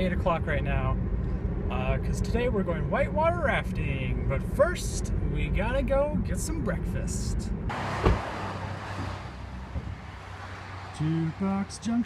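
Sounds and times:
car hum: 0.0 - 12.0
road and wind noise: 0.0 - 12.0.

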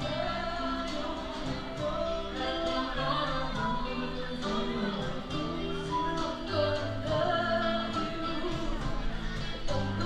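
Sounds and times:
guitar accompaniment: 0.0 - 10.0
person singing: 0.0 - 10.0.

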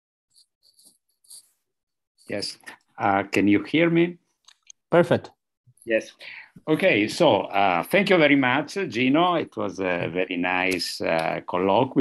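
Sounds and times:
faint breathy sounds: 6.1 - 6.6.

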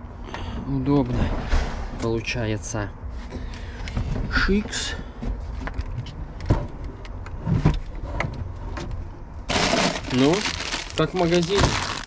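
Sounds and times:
plastic bag crinkling: 9.5 - 12.0.

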